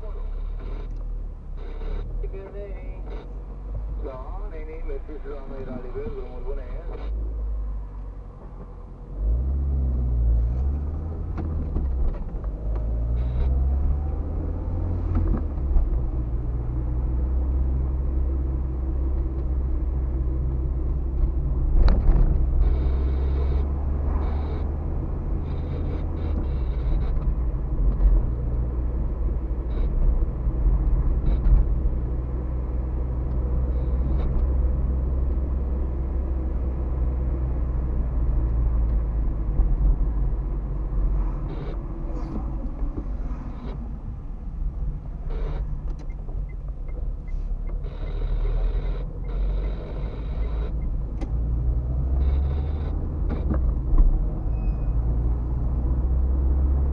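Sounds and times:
car engine and road noise: 0.0s - 56.9s.

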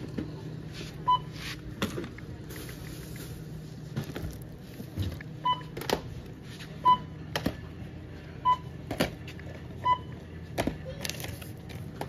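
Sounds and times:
barcode scanner beeping: 5.4s - 5.8s, 6.8s - 7.2s, 8.4s - 8.8s, 9.8s - 10.3s.

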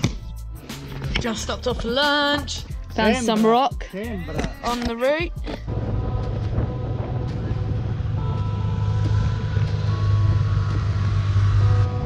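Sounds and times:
wind and road noise rumble: 5.6s - 12.0s
faint steady tones: 5.7s - 12.0s.

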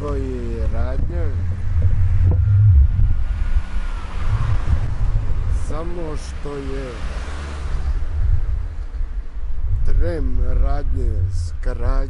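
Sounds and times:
wind buffeting microphone: 0.0s - 6.4s, 7.0s - 12.0s.

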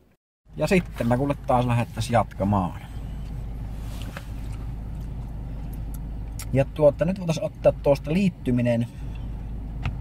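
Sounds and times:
car engine idling: 0.5s - 10.0s.

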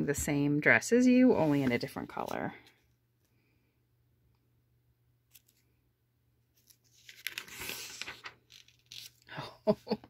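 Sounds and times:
catalog page rustling: 6.6s - 9.2s.

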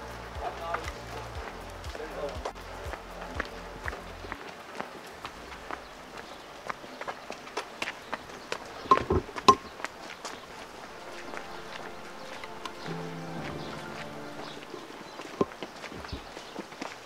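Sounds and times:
music bass beat: 0.0s - 4.4s, 10.6s - 15.0s
footsteps on wet cobbles: 0.0s - 17.0s.

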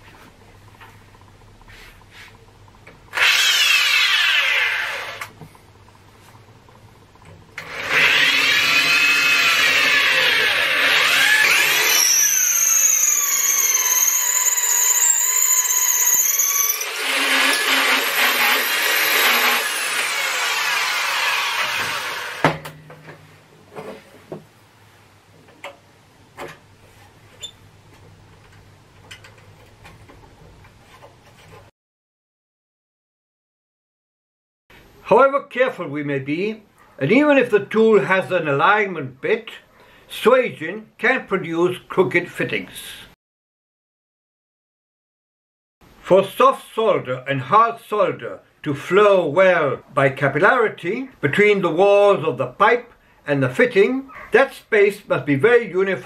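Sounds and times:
electric drill whining: 3.1s - 5.3s, 7.6s - 22.5s.

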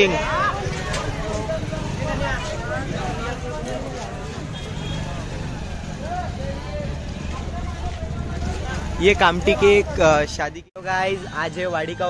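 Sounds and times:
voices talking: 0.0s - 12.0s.

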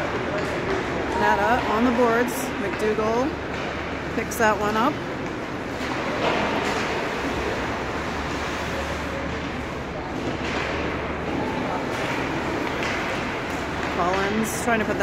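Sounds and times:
hockey sticks or puck knocking: 0.0s - 2.0s, 10.2s - 15.0s.

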